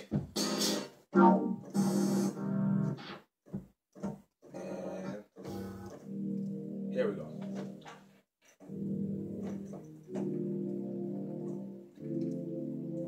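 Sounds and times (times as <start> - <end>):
synthesizer chords: 0.0 - 3.2, 4.6 - 13.0.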